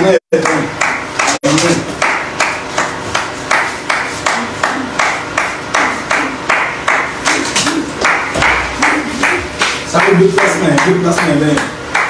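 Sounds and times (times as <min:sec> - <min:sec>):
hands clapping: 0:00.4 - 0:12.0.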